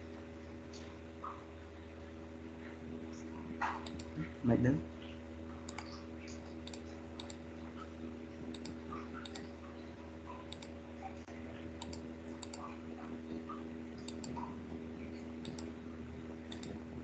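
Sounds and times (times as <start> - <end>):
electrical hum: 0.0 - 17.0
computer mouse clicks: 3.7 - 4.2, 5.7 - 7.4, 8.5 - 9.5, 10.4 - 10.8, 11.8 - 12.7, 14.0 - 14.5, 15.4 - 15.7, 16.5 - 16.8.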